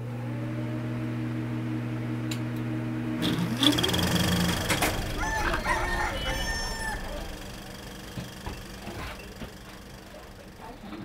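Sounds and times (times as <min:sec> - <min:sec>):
rooster crowing: 0:04.6 - 0:08.2.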